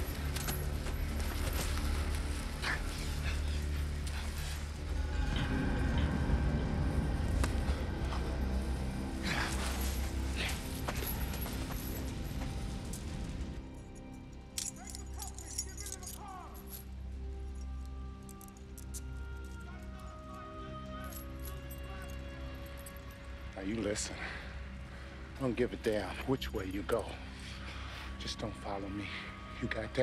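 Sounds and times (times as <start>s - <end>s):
low rumble: 0.0s - 13.8s
keys and chain jangling: 13.7s - 23.3s.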